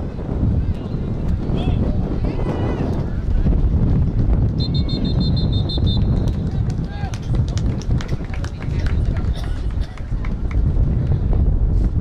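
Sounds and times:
heavy low rumble: 0.0 - 12.0.

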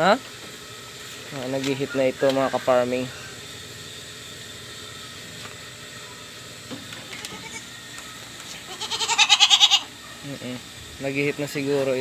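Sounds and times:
goat bleating: 7.0 - 7.7, 8.6 - 10.0.

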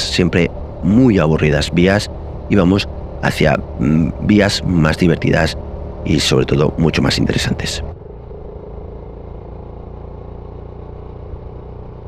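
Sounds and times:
motorcycle engine running: 0.0 - 12.0
road noise: 0.0 - 12.0.

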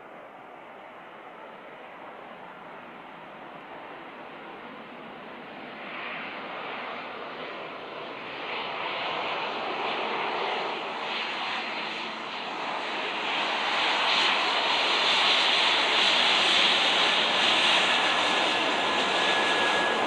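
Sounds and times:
jet engines rushing: 6.5 - 20.0
faint steady whine: 15.7 - 20.0.

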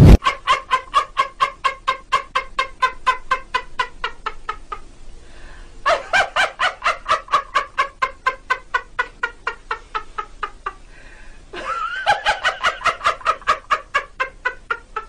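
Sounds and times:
rapid cackling laughter: 0.0 - 4.8, 5.9 - 10.8, 11.6 - 15.0.

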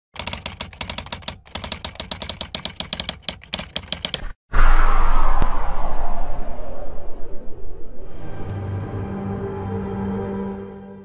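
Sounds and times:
keyboard typing clicks: 0.2 - 4.3.

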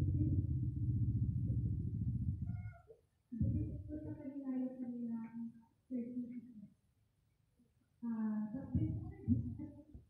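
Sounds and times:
low fluttering rumble: 0.0 - 2.6.

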